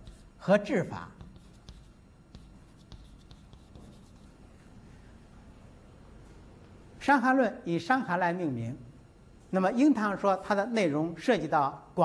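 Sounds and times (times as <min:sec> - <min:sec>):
chalk scratching on blackboard: 0:00.0 - 0:00.5, 0:01.1 - 0:04.4.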